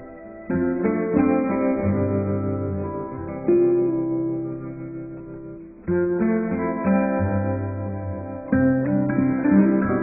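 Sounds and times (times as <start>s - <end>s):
plucked guitar notes: 0.0s - 10.0s.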